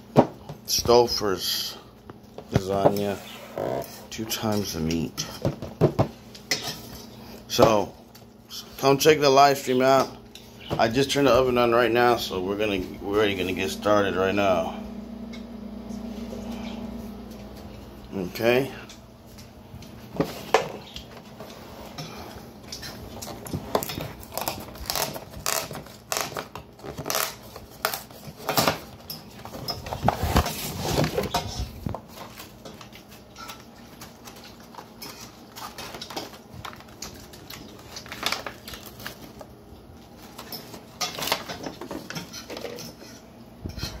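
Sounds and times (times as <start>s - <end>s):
cardboard and foil crinkling: 22.8s - 43.0s.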